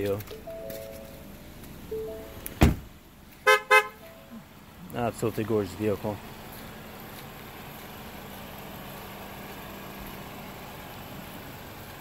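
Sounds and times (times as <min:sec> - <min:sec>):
car door shutting: 0:02.2 - 0:03.0
car horn toots: 0:03.4 - 0:04.3.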